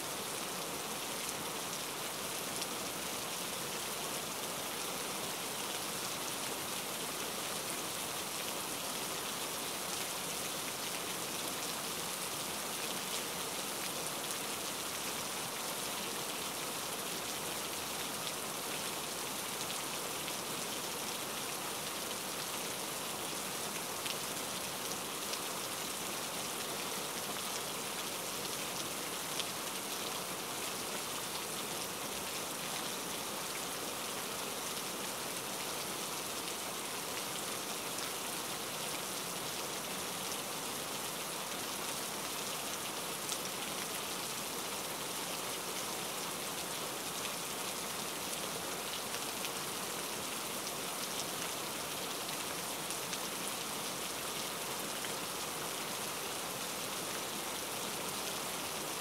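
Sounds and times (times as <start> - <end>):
steady rain: 0.0 - 59.0.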